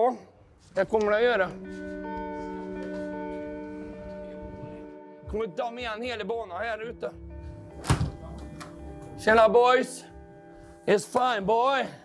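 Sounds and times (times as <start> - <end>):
background music with held notes: 0.6 - 12.0
door thunk: 7.8 - 8.8.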